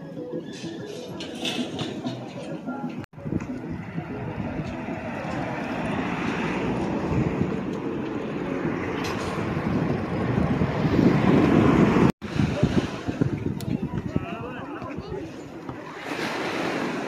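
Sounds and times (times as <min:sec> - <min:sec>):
wind on microphone: 0:03.1 - 0:17.0.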